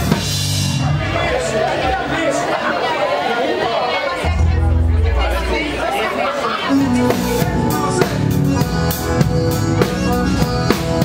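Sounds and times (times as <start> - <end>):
voices talking: 0.8 - 8.9
low bass note held: 4.2 - 8.5
instrument note: 4.2 - 9.0.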